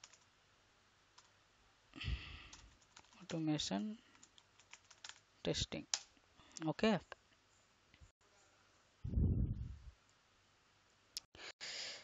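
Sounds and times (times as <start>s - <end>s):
faint keyboard keystrokes: 2.5s - 3.4s, 4.1s - 5.2s.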